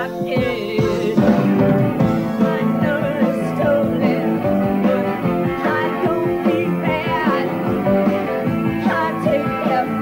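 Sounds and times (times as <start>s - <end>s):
electric guitar: 0.0s - 10.0s
rock band playing live: 0.0s - 10.0s.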